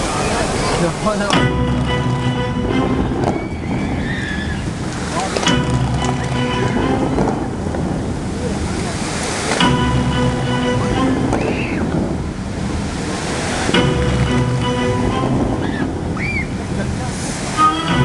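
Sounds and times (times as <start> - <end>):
water jets spraying: 0.0 - 18.0
music from loudspeakers: 17.6 - 18.0.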